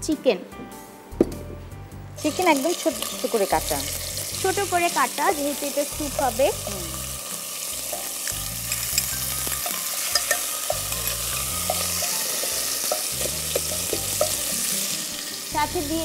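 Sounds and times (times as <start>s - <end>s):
chicken sizzling in oil: 2.2s - 16.0s.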